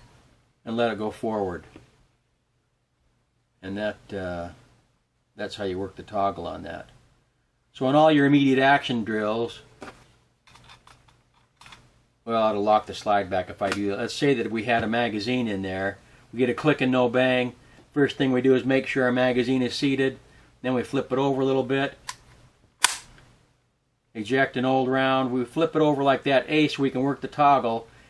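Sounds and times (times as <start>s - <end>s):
pistol action metallic clack: 22.8s - 23.2s.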